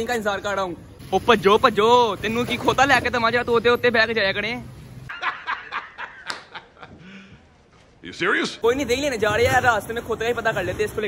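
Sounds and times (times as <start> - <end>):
man laughing hard: 5.1 - 7.2.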